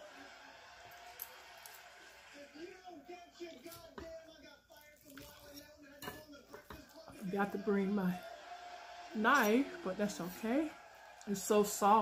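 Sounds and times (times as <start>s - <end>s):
fork scraping on plate: 4.9s - 7.1s.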